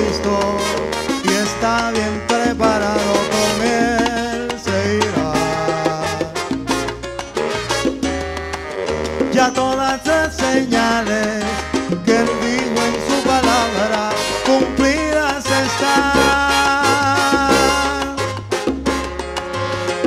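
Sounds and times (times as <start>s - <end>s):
salsa band playing: 0.0s - 20.0s.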